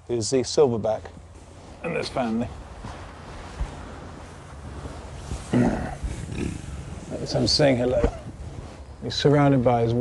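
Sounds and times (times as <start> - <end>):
gorilla grunting: 5.5 - 6.8.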